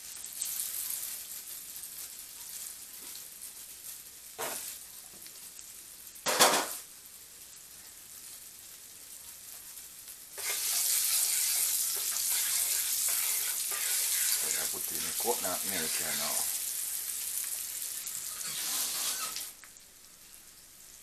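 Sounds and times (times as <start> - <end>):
loud steady sizzle: 0.0 - 21.0
sauce simmering in a frying pan: 0.0 - 21.0
wooden spoon stirring sauce: 10.4 - 16.5.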